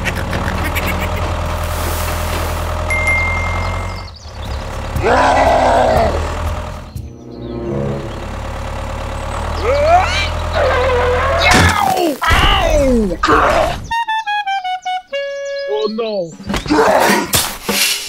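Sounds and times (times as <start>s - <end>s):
low engine hum: 0.0s - 11.5s.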